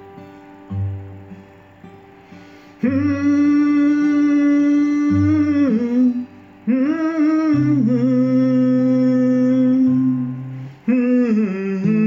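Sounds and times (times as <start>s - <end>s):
fingerstyle acoustic guitar: 0.0s - 12.0s
man humming: 2.8s - 12.0s.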